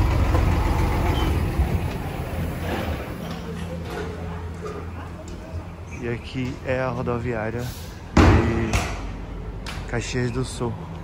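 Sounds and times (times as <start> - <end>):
man's voice: 5.9 - 8.9.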